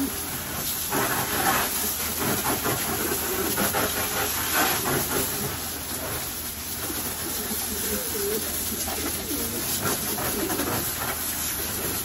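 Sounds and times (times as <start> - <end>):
water splashing off metal bars: 0.0 - 12.0
water spraying from hose: 0.0 - 12.0.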